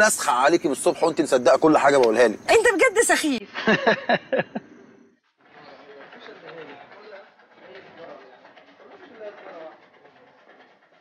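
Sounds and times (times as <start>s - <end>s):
street ambience: 0.0s - 11.0s
faint murmur of distant voices: 5.4s - 11.0s.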